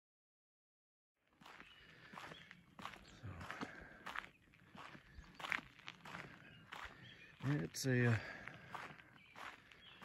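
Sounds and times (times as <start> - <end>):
footsteps crunching on gravel: 1.3 - 10.0.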